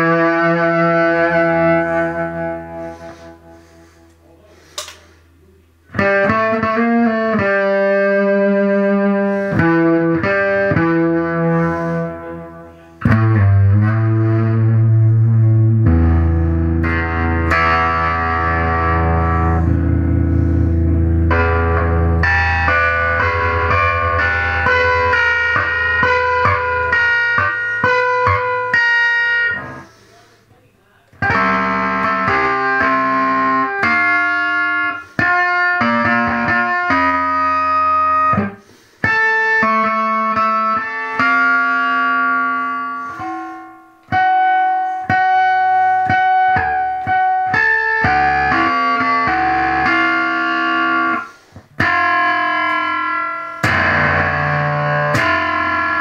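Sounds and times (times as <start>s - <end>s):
fuzz electric guitar: 0.0s - 5.2s, 5.9s - 30.1s, 31.1s - 56.0s.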